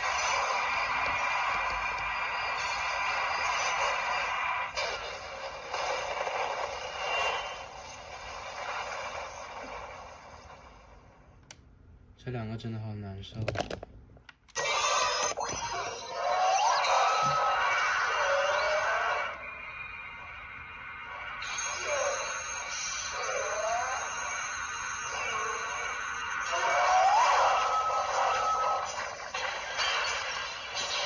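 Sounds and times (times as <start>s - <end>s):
swooping electronic tones: 14.6s - 31.0s
toy playing electronic music: 21.1s - 28.9s.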